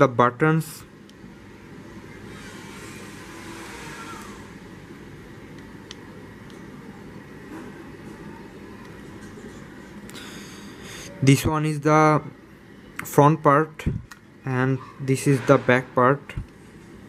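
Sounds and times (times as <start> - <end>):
low background rumble and hiss: 4.2 - 17.0.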